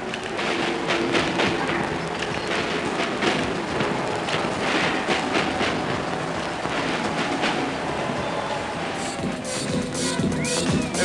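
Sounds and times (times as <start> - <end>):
marching snare drum roll: 0.0 - 11.0.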